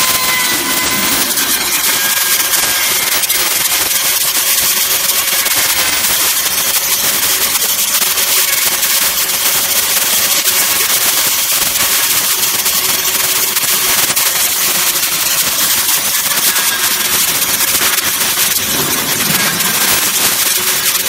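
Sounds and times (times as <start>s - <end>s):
electric motor whine: 0.0s - 3.4s
milling head cutting metal: 0.0s - 8.9s, 13.7s - 21.0s.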